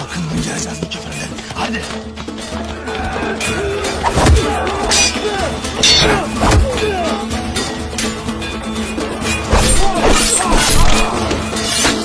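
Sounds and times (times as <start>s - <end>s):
dramatic soundtrack music: 0.0s - 12.0s.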